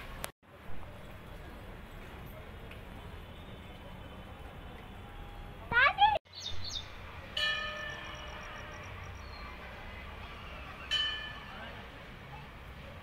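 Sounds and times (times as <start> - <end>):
temple bell ringing: 7.3 - 9.4, 10.9 - 12.0.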